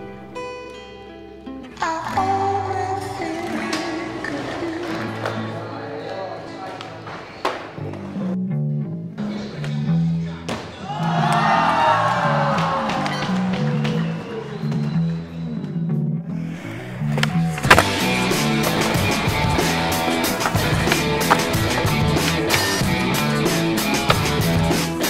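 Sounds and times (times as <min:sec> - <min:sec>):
skateboard wheels rolling: 0:16.6 - 0:25.0
skateboard popping and landing: 0:17.0 - 0:25.0
music with steady bass line: 0:17.4 - 0:25.0.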